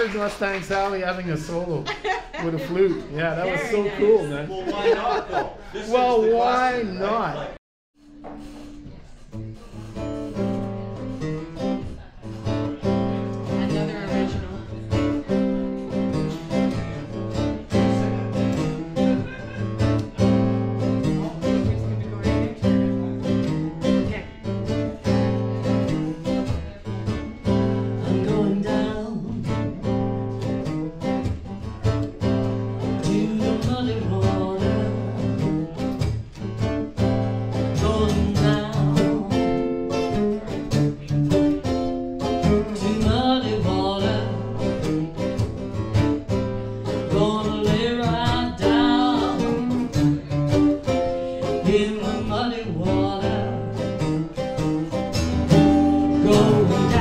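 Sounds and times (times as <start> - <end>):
acoustic guitars playing blues: 0.0 - 57.0.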